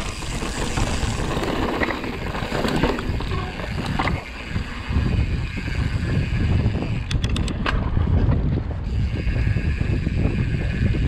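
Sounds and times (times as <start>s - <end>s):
bike rolling on dirt trail: 0.0s - 11.0s
wind buffeting microphone: 0.0s - 11.0s.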